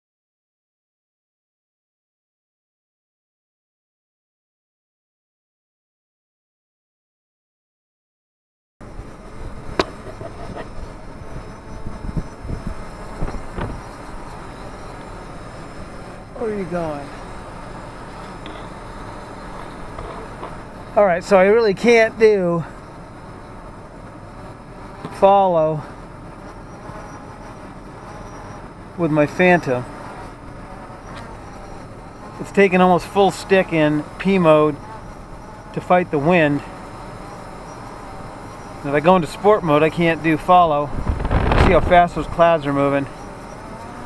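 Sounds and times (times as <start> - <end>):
wind buffeting microphone: 9.4 - 16.4, 40.5 - 42.6.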